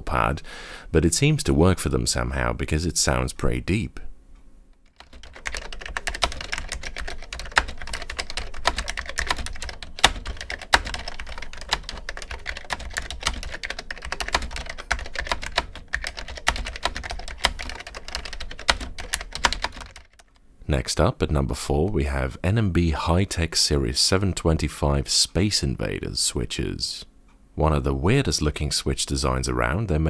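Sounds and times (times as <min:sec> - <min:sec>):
fast keyboard typing: 0:04.9 - 0:20.4.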